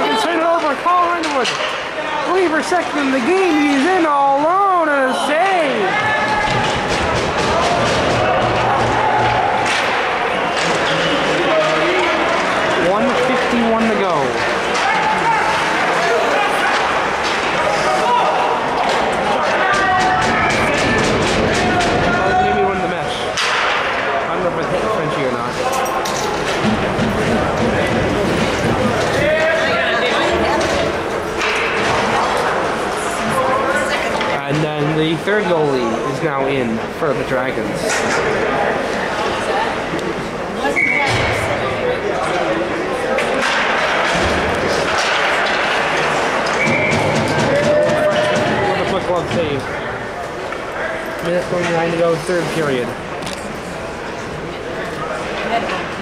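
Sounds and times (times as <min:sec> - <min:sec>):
voices calling out echoing: 0:00.0 - 0:56.0.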